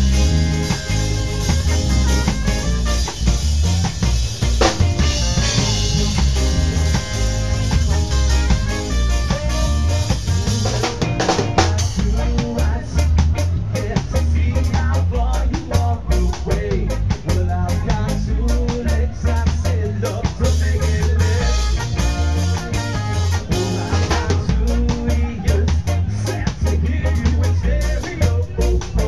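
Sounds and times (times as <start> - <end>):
trumpet: 0.0 - 13.6, 20.8 - 24.9
bass line: 0.0 - 29.0
drum kit beat: 0.0 - 29.0
ska band playing: 0.0 - 29.0.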